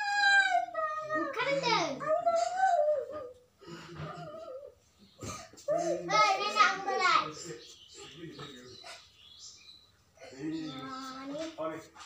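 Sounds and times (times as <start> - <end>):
girl whining: 0.0 - 3.4, 4.0 - 4.8.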